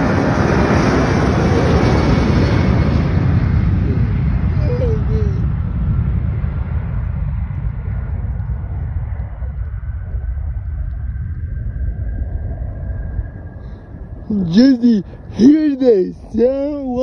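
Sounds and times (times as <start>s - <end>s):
jet engine whine: 0.0s - 17.0s
jet engines rumbling: 0.0s - 17.0s.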